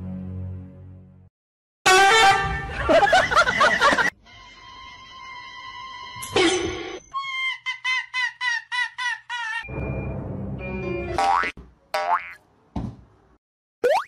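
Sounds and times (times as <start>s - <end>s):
cartoon boing: 11.2s - 12.4s.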